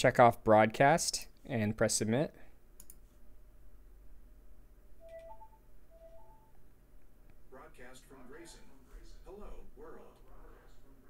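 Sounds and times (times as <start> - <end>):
faint rising two-note chime: 5.0 - 6.5.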